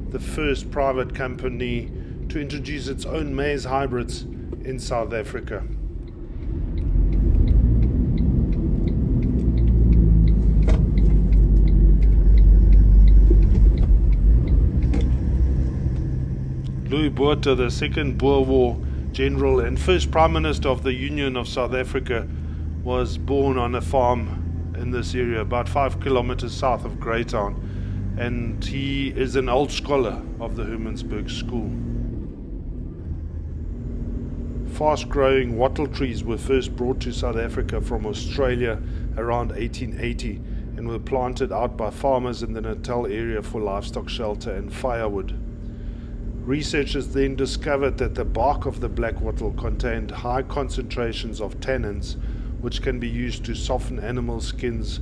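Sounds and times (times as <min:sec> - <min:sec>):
road noise inside car: 0:00.0 - 0:55.0
vehicle engine and tyre rumble: 0:00.0 - 0:55.0
faint light ticks: 0:06.0 - 0:15.2.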